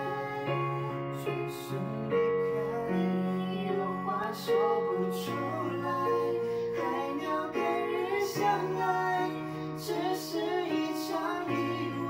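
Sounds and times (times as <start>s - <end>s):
woman singing pop ballad: 0.0s - 1.8s, 2.7s - 12.0s.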